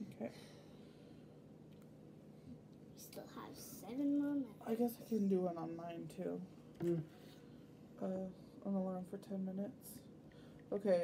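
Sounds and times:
faint hum: 0:00.0 - 0:11.0.

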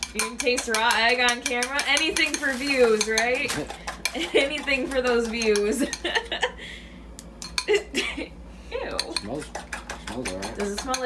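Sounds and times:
fork clinking against ceramic bowl: 0:00.0 - 0:06.1, 0:07.4 - 0:07.7, 0:08.9 - 0:11.0.

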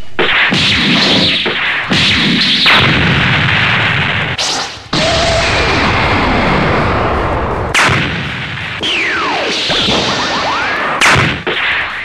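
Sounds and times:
cartoon hit: 0:00.2 - 0:06.9, 0:07.8 - 0:11.7.

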